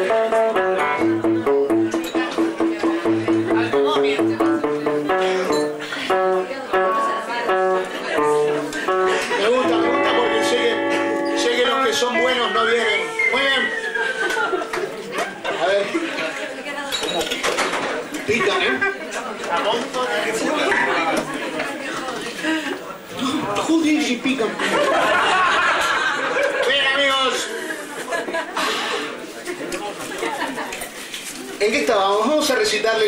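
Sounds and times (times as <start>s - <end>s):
indistinct talking: 0.0s - 26.6s.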